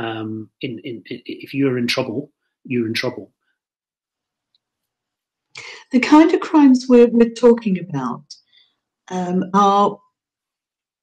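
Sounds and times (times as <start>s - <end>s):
person speaking: 0.0s - 3.2s.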